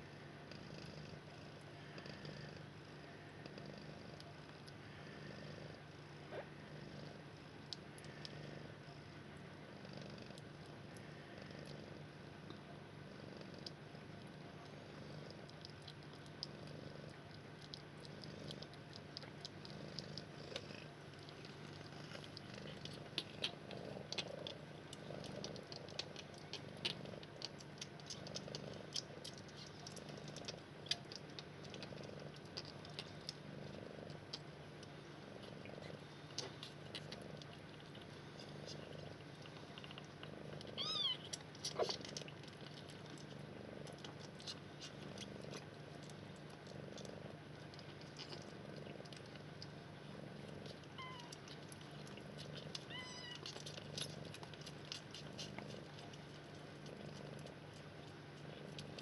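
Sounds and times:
cat purring: 0.0s - 59.0s
kitten mewing: 40.8s - 42.0s, 52.7s - 54.1s.

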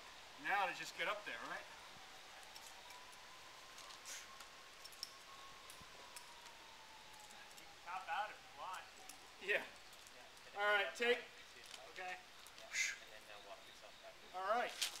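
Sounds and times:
people talking indistinctly: 7.4s - 14.8s.

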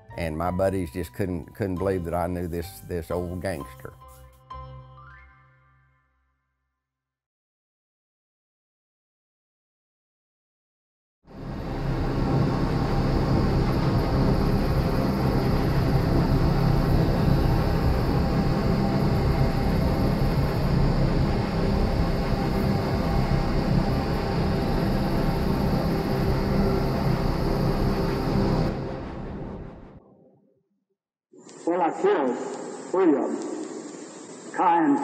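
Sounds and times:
cinematic drone rumble: 11.3s - 30.0s.

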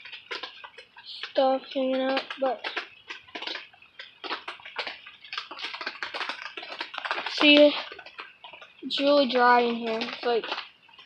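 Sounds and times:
rain pattering on plastic cover: 0.0s - 11.0s.

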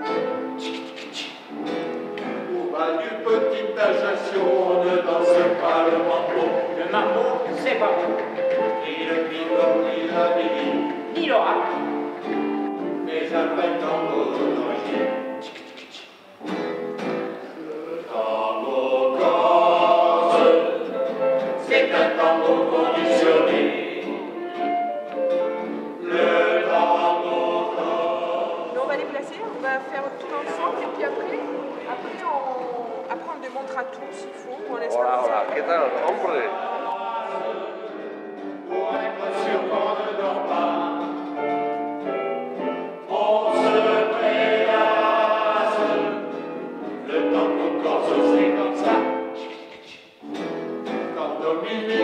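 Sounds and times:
choir singing chords: 0.0s - 52.0s.

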